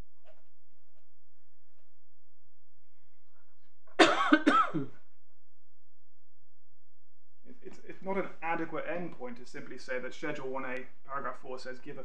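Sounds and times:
person coughing: 4.0 - 5.0.

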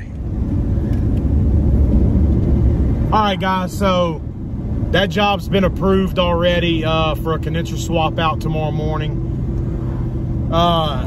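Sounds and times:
road and engine rumble in cab: 0.0 - 11.0.

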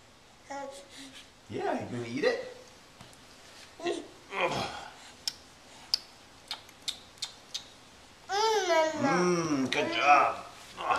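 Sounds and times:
baby mouth clicks: 5.2 - 7.8.

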